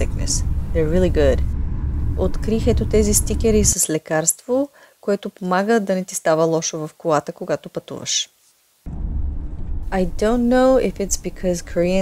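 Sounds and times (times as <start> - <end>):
person speaking: 0.0 - 1.4, 2.2 - 4.1, 10.0 - 12.0
car road and engine rumble: 0.0 - 3.8, 8.9 - 12.0.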